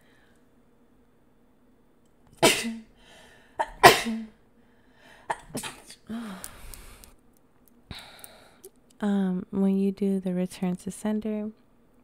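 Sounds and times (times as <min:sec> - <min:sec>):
woman sneezing: 0:02.4 - 0:02.9, 0:03.6 - 0:04.3
breathy sounds: 0:06.0 - 0:07.2, 0:07.9 - 0:08.7.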